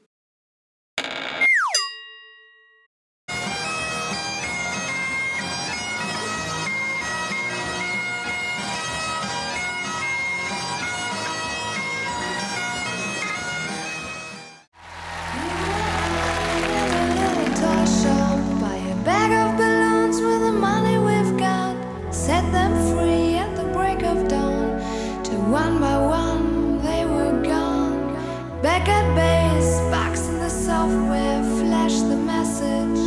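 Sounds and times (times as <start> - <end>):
bagpipes playing a melody: 3.4 - 14.4
crowd noise: 14.8 - 19.1.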